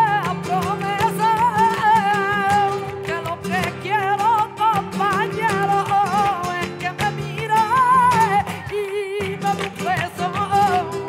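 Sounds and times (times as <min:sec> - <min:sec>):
flamenco guitar: 0:00.0 - 0:11.0.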